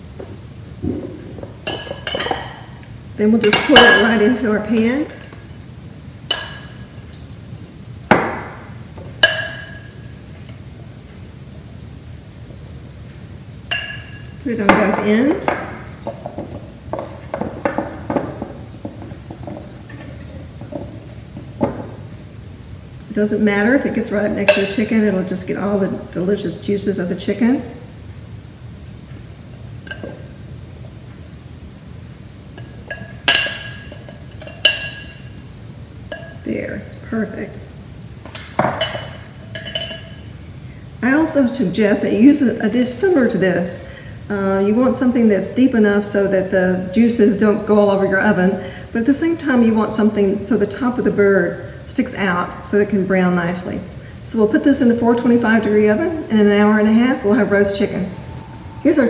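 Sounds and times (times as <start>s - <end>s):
low steady background noise: 0.0s - 59.0s
spoon clinking glass bowl: 9.2s - 10.0s, 13.7s - 14.4s, 32.6s - 35.4s, 36.1s - 36.4s, 38.6s - 40.3s.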